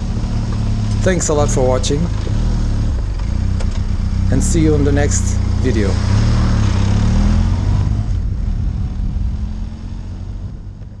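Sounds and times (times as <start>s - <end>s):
motorcycle engine running: 0.0s - 11.0s
noisy rush: 0.0s - 11.0s.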